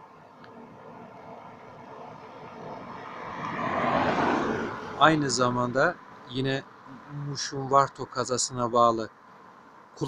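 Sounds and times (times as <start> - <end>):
aircraft passing: 0.5 - 7.1.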